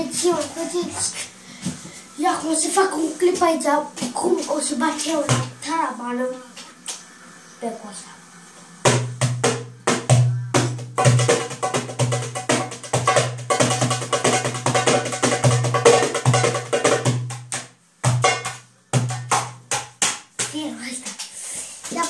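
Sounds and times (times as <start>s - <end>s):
goblet drum played by hand: 8.9s - 20.1s.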